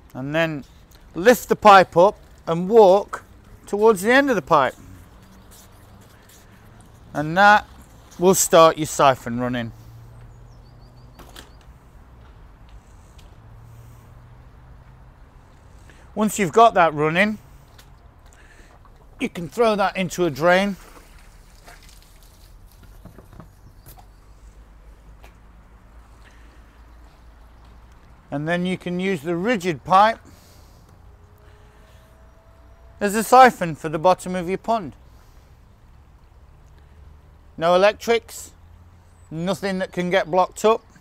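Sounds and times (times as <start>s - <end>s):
water trickling onto paving: 0.6s - 9.2s, 17.5s - 28.3s
water splashing onto concrete: 20.6s - 23.0s.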